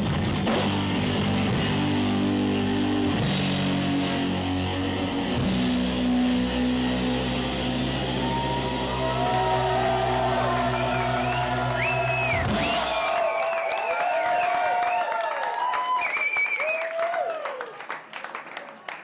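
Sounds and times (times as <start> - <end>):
rock band chord ringing: 0.0 - 13.0
crowd cheering and whooping: 6.6 - 17.9
crowd clapping: 7.9 - 19.0.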